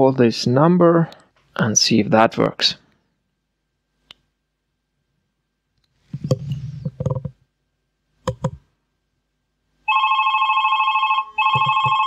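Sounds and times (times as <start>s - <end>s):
smartphone ringtone: 9.9s - 12.0s.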